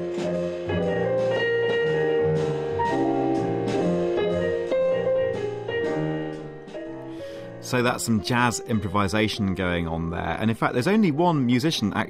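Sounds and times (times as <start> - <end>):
drum strikes keeping time: 0.0 - 8.4
jazz melody and chords: 0.0 - 12.0.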